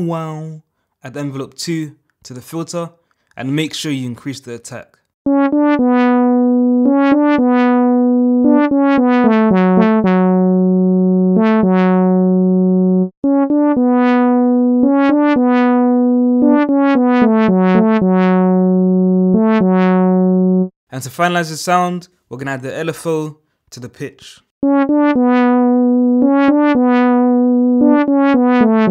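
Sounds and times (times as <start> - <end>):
synth lead melody with filter sweep: 5.2 - 20.8, 24.6 - 28.9.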